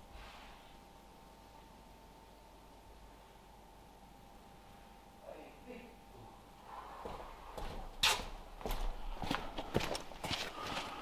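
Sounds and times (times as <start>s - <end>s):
footsteps crunching on gravel: 7.0s - 11.0s.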